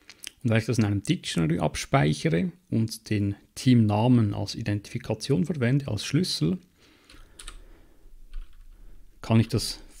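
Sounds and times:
computer keyboard clicks: 0:07.1 - 0:07.6.

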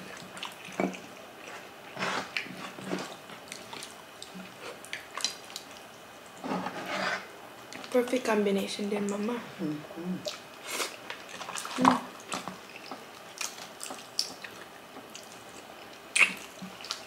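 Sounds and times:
wet chewing and lip smacking: 0:00.0 - 0:05.9, 0:10.2 - 0:17.0.

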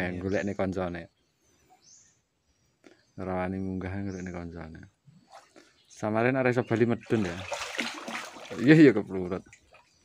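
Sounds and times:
fish splashing water: 0:07.0 - 0:08.9.

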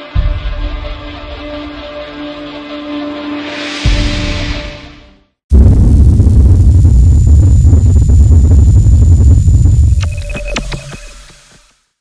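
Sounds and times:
loud low rumble: 0:05.5 - 0:10.0.

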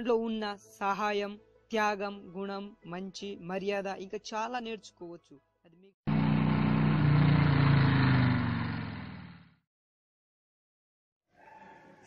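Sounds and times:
motorcycle engine running: 0:06.1 - 0:09.6.

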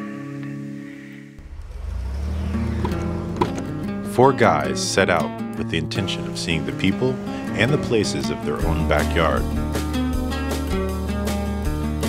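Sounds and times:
car engine rumbling: 0:01.4 - 0:10.4
guitar chord: 0:02.6 - 0:12.0.

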